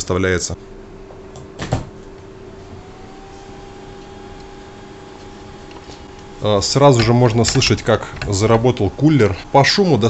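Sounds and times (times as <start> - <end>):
cooling fan whine: 0.0 - 10.0
steady low hum: 0.0 - 10.0.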